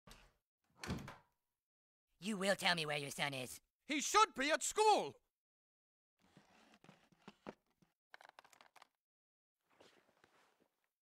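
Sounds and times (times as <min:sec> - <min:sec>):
door shutting with a thud: 0:00.8 - 0:01.3.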